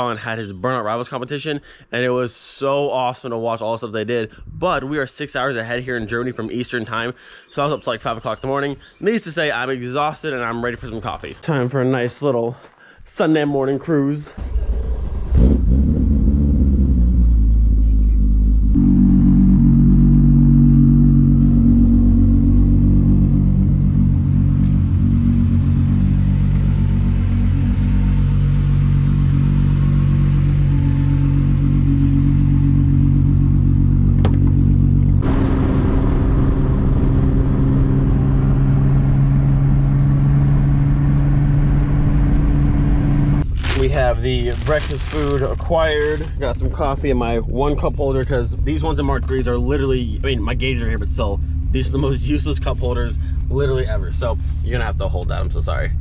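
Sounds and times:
car engine droning: 14.4s - 56.0s
road and wind noise: 14.4s - 56.0s.

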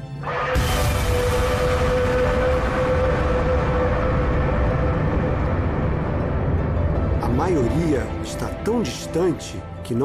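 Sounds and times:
long droning tone: 0.3s - 7.2s
low rumble: 0.6s - 8.8s.

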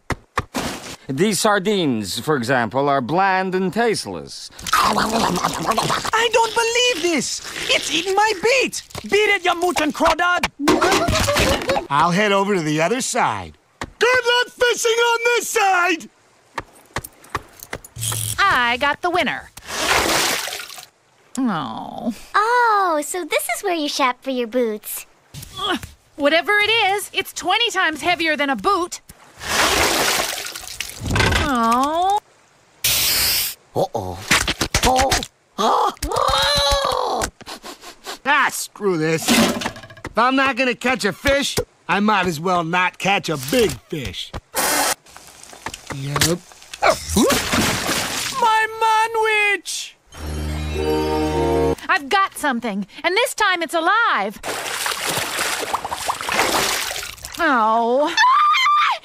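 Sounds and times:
water rushing and splashing: 0.1s - 49.6s, 54.4s - 57.8s.

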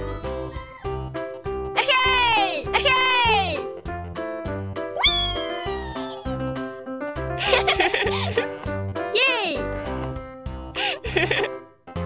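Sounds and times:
cartoon music with bass beat: 0.0s - 12.0s
high-pitched cartoon voice squealing: 1.8s - 3.6s, 5.0s - 6.4s, 9.2s - 9.6s.

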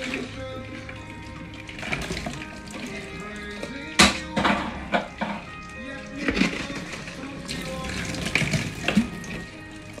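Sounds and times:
plastic bottles being handled: 0.0s - 10.0s.

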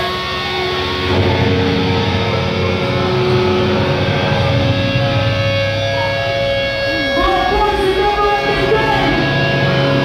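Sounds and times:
bass guitar: 0.0s - 10.0s
distorted electric guitars: 0.0s - 10.0s
drums: 0.0s - 10.0s.

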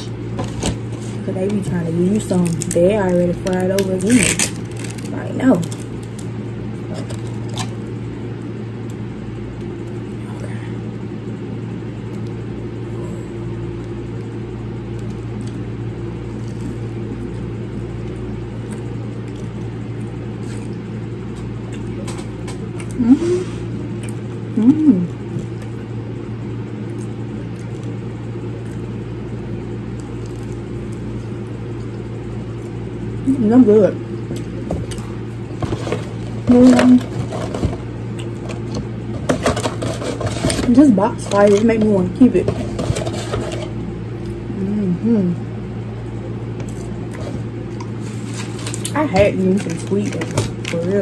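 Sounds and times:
room fan motor hum: 0.0s - 51.0s
person murmuring mm: 22.9s - 23.7s, 24.6s - 25.2s, 44.5s - 45.5s.

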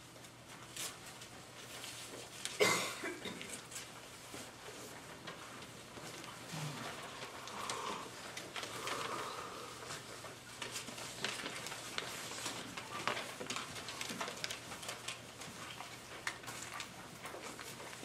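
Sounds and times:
faint steady hum: 0.0s - 18.0s
small clicks and rustles: 0.0s - 18.0s
soft murmur of voices: 6.2s - 10.0s.

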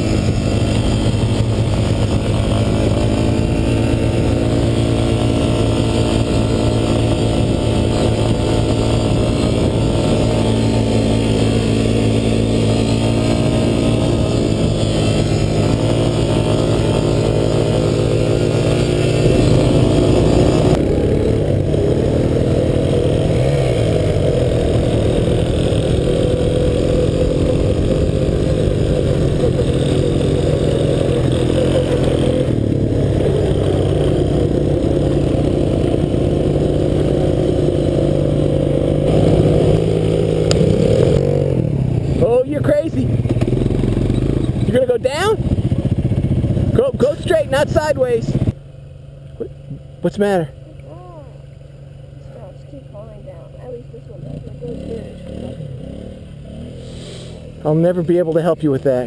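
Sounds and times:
quad bike engine revving: 0.0s - 48.6s, 49.3s - 59.0s.

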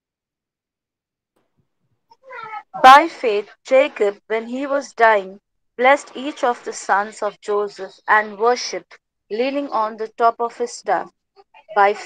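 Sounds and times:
woman reading aloud: 2.3s - 12.0s.

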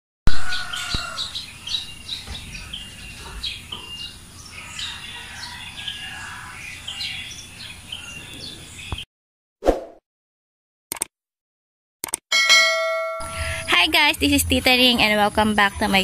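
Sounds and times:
small birds chirping: 0.4s - 9.1s.

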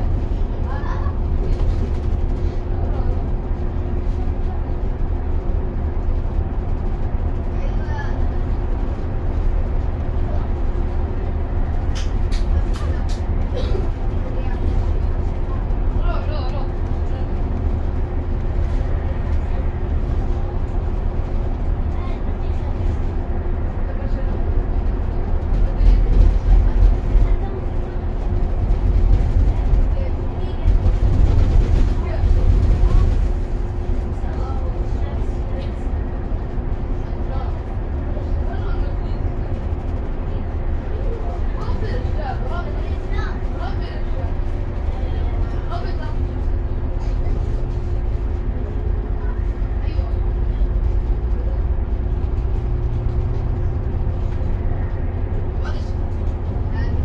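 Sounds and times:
bus engine and road rumble: 0.0s - 57.0s
constant hum: 0.0s - 57.0s.

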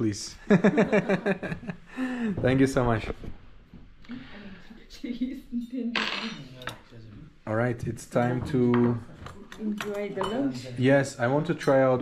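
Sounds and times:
dishes clinking: 5.6s - 6.9s, 8.2s - 10.7s, 11.4s - 12.0s.

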